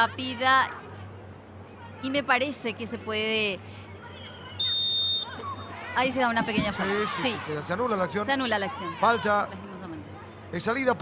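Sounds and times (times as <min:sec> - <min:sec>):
referee's whistle blast: 0:04.6 - 0:05.4.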